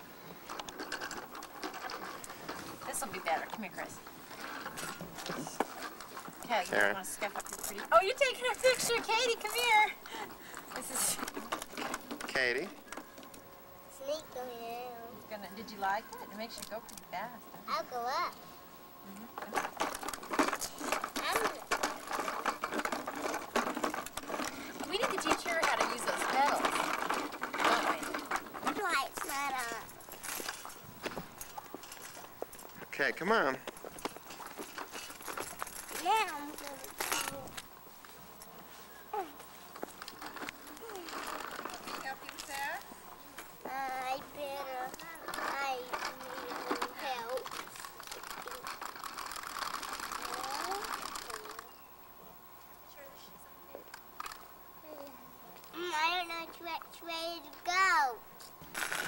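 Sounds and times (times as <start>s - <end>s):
bicycle clicking rattle: 0.4s - 13.4s, 19.4s - 32.8s, 33.7s - 37.7s, 39.8s - 42.8s, 44.4s - 51.7s, 58.7s - 59.0s.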